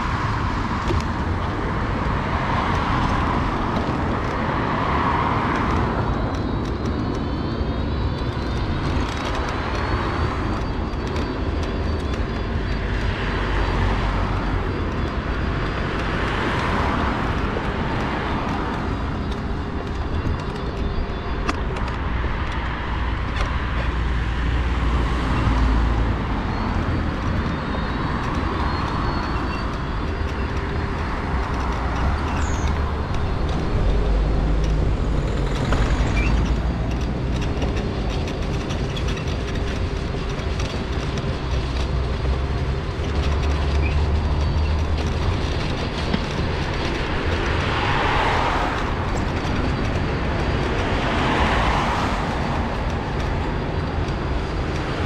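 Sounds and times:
mobility scooter rumbling: 0:00.0 - 0:55.0
road traffic: 0:00.0 - 0:55.0
vehicle passing: 0:41.6 - 0:55.0.

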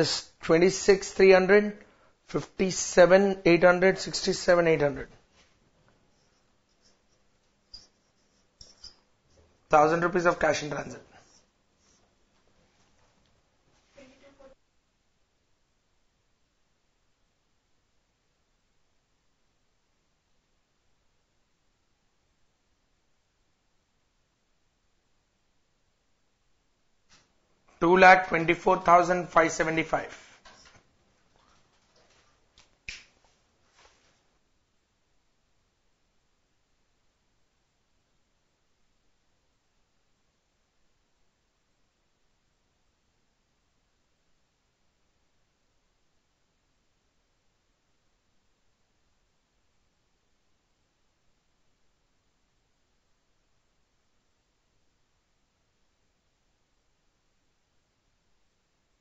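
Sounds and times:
marker squeaking on whiteboard: 0:06.1 - 0:09.6.

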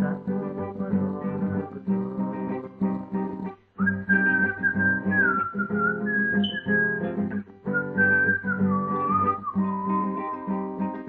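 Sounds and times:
strummed nylon-string guitar: 0:00.0 - 0:11.0
person whistling a melody: 0:03.8 - 0:11.0.

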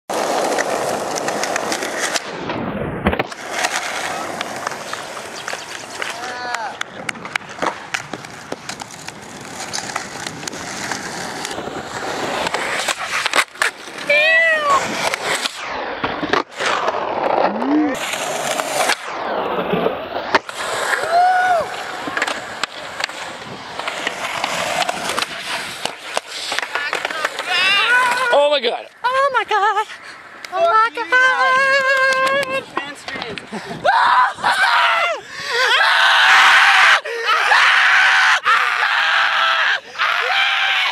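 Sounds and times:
skateboard clacks: 0:00.1 - 0:02.3, 0:03.0 - 0:19.0, 0:20.3 - 0:28.3, 0:31.6 - 0:33.5
skateboard wheels rolling on pavement: 0:00.1 - 0:40.9
person screaming: 0:21.0 - 0:21.8, 0:33.8 - 0:40.9
shouted voice calls: 0:30.6 - 0:32.7.

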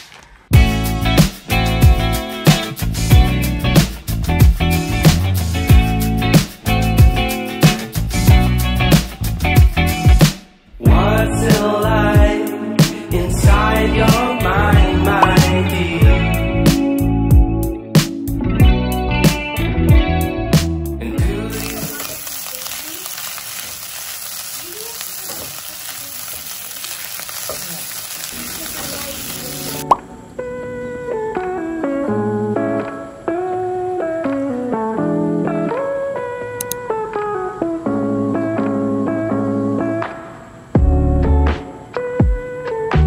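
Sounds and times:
background music: 0:00.5 - 0:22.1
rice and egg sizzling in a pan: 0:21.4 - 0:29.8.

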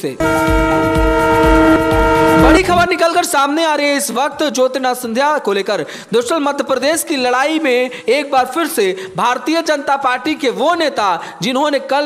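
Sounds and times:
held synth chord: 0:00.2 - 0:02.9
low bass hits: 0:00.2 - 0:02.9.

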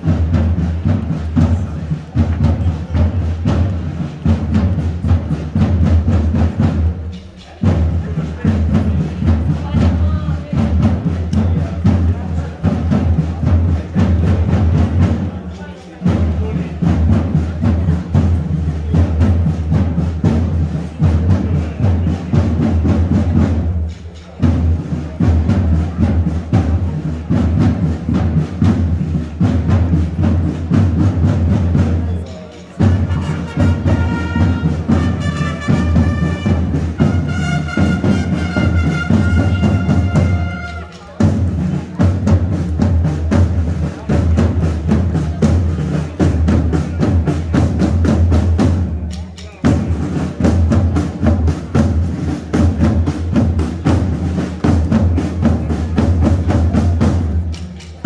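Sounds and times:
deep drum beat: 0:00.0 - 0:58.0
fast drum rolls: 0:00.0 - 0:58.0
wind instrument high melody: 0:32.8 - 0:41.2.

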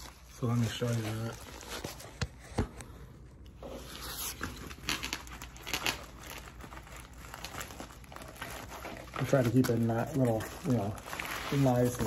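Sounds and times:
plastic packaging crinkling: 0:00.0 - 0:02.3, 0:03.8 - 0:12.0.

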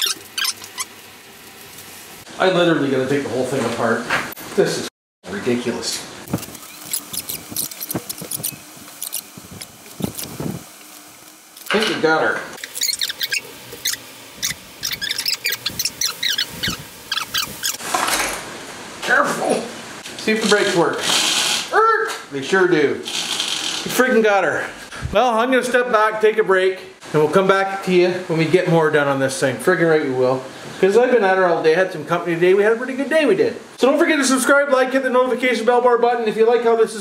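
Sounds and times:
metal parts squeaking and clicking: 0:00.0 - 0:00.9, 0:06.3 - 0:09.4, 0:12.6 - 0:17.8.

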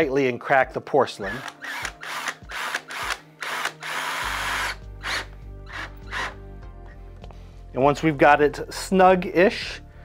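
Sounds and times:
background music: 0:00.0 - 0:10.0
cordless drill driving screw: 0:01.3 - 0:06.4.

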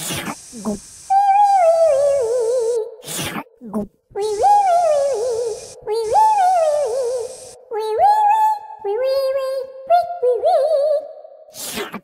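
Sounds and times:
steady hiss: 0:00.0 - 0:03.4, 0:04.2 - 0:07.8
high-pitched puppet voice: 0:00.6 - 0:02.9, 0:03.6 - 0:11.8.

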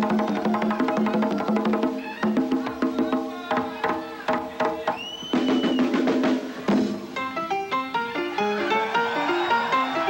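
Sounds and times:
congas playing fast rhythm: 0:00.0 - 0:10.0
live latin rock band: 0:00.0 - 0:10.0.

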